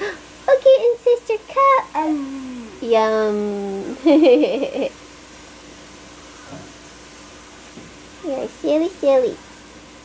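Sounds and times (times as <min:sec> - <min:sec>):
faint low hum: 0:00.0 - 0:10.0
steady hiss: 0:00.0 - 0:10.0.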